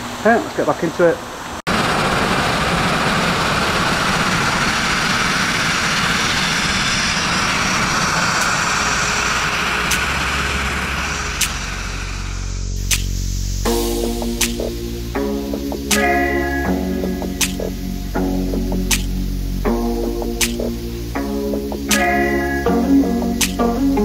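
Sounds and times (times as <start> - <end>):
grit-blasting rush of air: 1.4 - 24.0
music: 12.6 - 24.0.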